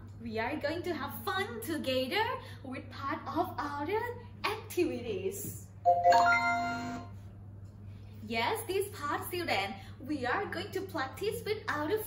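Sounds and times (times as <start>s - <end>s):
bright software chime: 5.9s - 7.1s.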